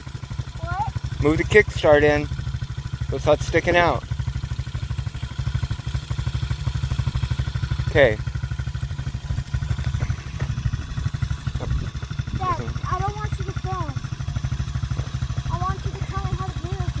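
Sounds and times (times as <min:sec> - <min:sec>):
dirt bike engine idling: 0:00.0 - 0:17.0.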